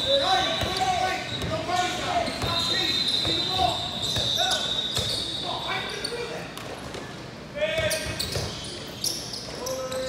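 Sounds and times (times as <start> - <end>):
voices calling out in hall: 0.0 - 6.6, 7.5 - 10.0.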